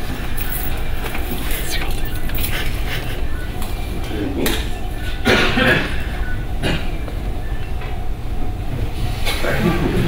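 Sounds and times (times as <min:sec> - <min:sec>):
faint voices: 0:00.4 - 0:06.2.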